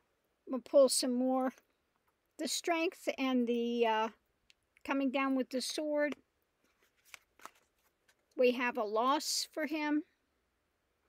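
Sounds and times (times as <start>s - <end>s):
cards flicking and rustling: 6.6s - 8.4s.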